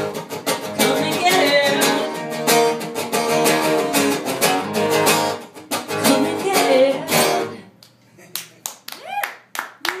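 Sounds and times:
sparse hand claps: 0:07.8 - 0:10.0.

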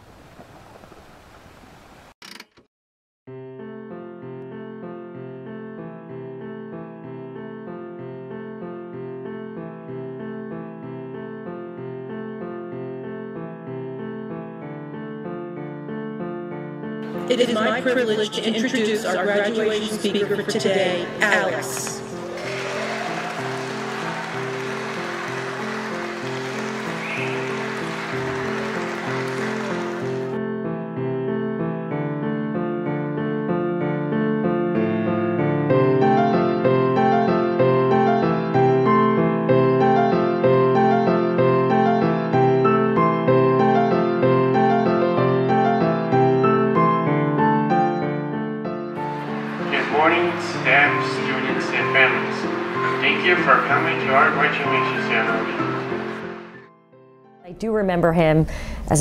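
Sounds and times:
soft piano music: 0:03.3 - 0:57.5
audience applauding: 0:21.0 - 0:30.4, 0:49.0 - 0:56.6.

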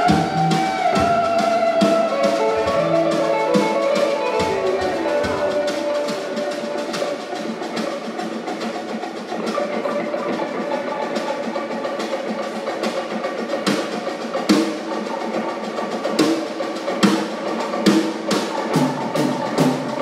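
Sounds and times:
live instrumental band: 0:00.0 - 0:20.0.

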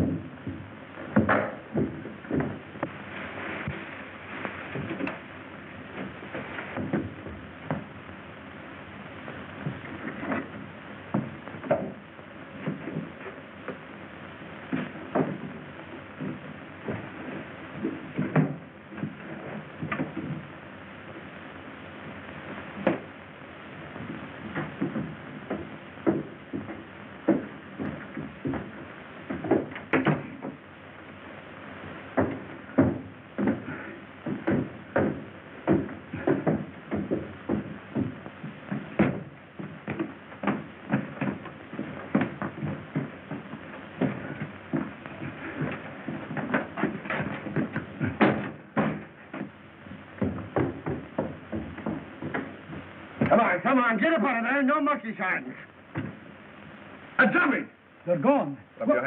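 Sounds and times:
footsteps on wooden floors: 0:00.0 - 0:08.2, 0:09.2 - 0:21.3, 0:22.3 - 0:23.2, 0:23.8 - 0:53.5, 0:55.8 - 0:56.3
film soundtrack hiss and hum: 0:00.0 - 0:59.0.

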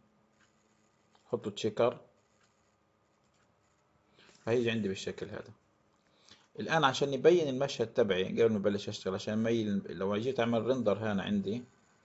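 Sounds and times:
faint clicks: 0:00.3 - 0:01.5, 0:02.2 - 0:04.6.

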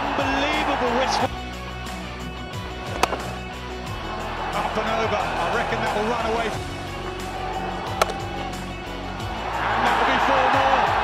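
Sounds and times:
background music with held tones: 0:00.0 - 0:11.0
cricket bat striking ball: 0:02.9 - 0:03.4, 0:07.9 - 0:08.5.

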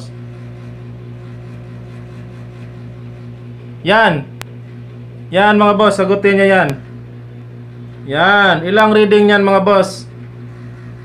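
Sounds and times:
low hum with faint buzzing: 0:00.0 - 0:11.0.

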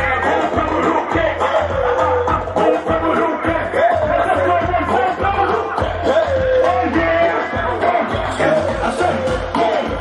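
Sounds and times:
bass-heavy beat through pa: 0:00.0 - 0:10.0.

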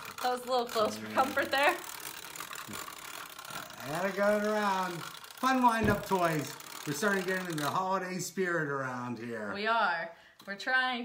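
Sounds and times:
wind-up toy gears whirring: 0:00.0 - 0:08.4.

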